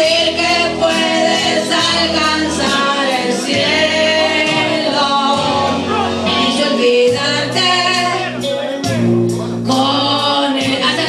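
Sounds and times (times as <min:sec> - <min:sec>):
women singing a duet: 0:00.0 - 0:08.5, 0:09.6 - 0:11.0
karaoke backing track: 0:00.0 - 0:11.0.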